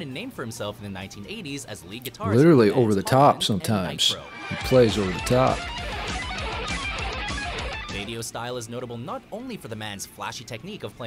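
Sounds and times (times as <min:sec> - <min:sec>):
fast electric guitar: 0:04.0 - 0:08.2
rapid low drum pulse: 0:04.5 - 0:08.1.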